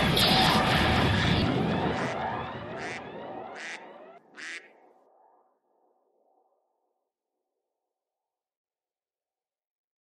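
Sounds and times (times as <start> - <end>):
duck quacking: 2.8 - 3.0, 3.6 - 3.8, 4.4 - 4.8.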